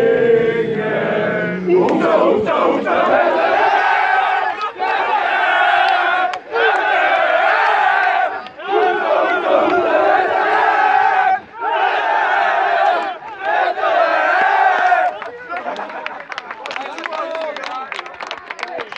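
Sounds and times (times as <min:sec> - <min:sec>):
men chanting in unison: 0:00.0 - 0:15.1.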